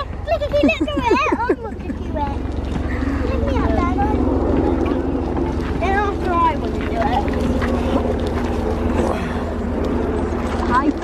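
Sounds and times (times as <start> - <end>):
aircraft drone overhead: 0.0 - 11.0.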